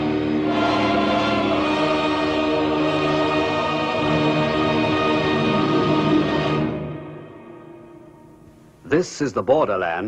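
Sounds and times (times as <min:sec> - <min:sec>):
film score with choir: 0:00.0 - 0:08.9.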